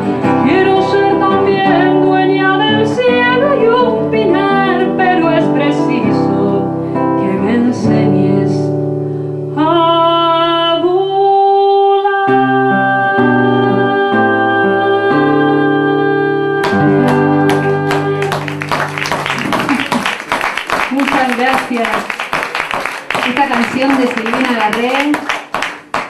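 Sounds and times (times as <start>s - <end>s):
classical guitar: 0.0s - 20.0s
woman singing: 0.2s - 8.8s, 9.6s - 18.5s.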